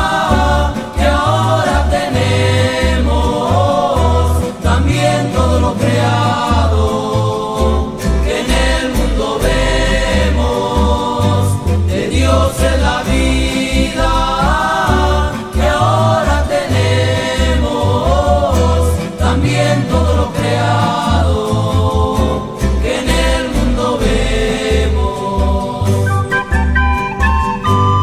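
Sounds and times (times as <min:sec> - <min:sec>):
male vocal group singing in harmony: 0:00.0 - 0:26.8
acoustic guitars: 0:00.0 - 0:28.0
walking bass line: 0:00.0 - 0:28.0.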